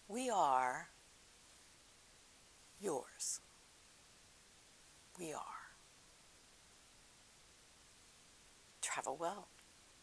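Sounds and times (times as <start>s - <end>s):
woman speaking: 0.0s - 0.9s, 2.8s - 3.4s, 5.1s - 5.8s, 8.8s - 9.5s.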